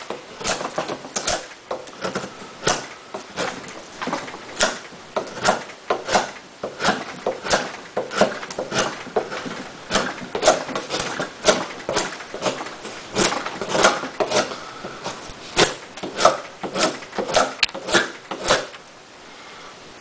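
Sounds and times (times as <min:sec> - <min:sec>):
knife scraping wood shavings: 0:04.6 - 0:18.8.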